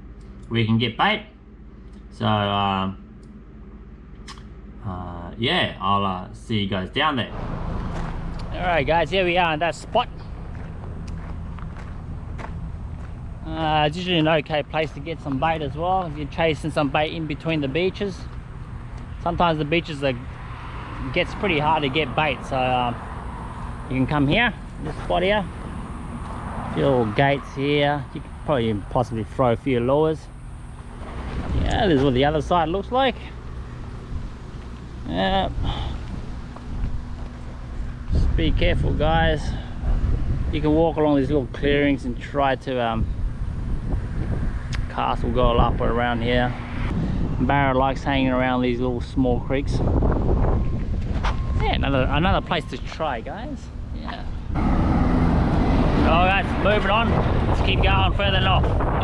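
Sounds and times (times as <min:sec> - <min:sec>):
low background rumble: 0:00.0 - 0:20.4
footsteps on gravel: 0:07.8 - 0:08.5, 0:10.1 - 0:14.4, 0:35.9 - 0:38.2
wind rumble on microphone: 0:30.9 - 0:32.9, 0:33.9 - 0:34.5, 0:35.3 - 0:52.8, 0:54.4 - 0:59.0.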